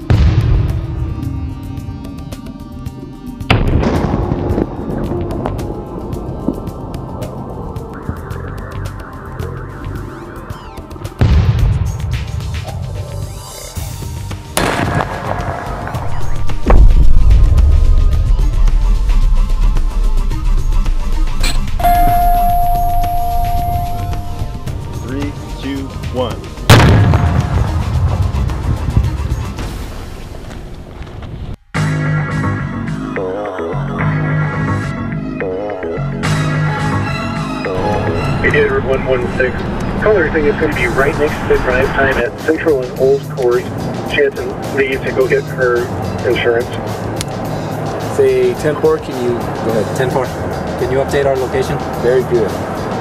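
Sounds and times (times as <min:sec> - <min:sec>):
background music: 0:00.0 - 0:30.6, 0:31.7 - 0:53.0
explosion boom: 0:03.5 - 0:05.6, 0:14.6 - 0:25.0, 0:26.7 - 0:30.6
low rumbling: 0:14.6 - 0:31.6, 0:37.6 - 0:42.4.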